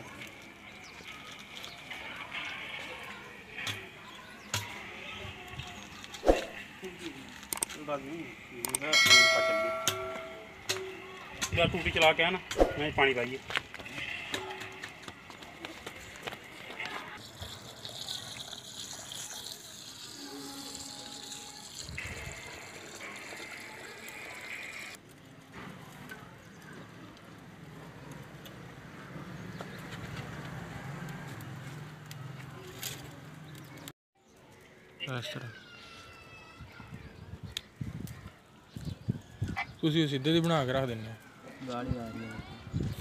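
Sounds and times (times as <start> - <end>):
faint voices: 0.0 - 11.9, 13.3 - 28.7
water running from a hose: 16.8 - 25.0
rice washed by hand: 17.2 - 24.8.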